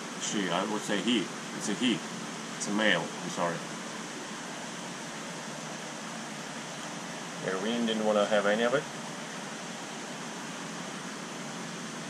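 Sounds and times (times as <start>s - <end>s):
aquarium water and bubbles hissing: 0.0s - 12.0s.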